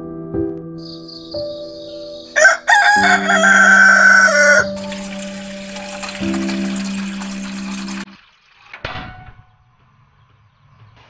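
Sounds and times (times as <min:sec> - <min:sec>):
rooster crowing: 0:01.9 - 0:05.3.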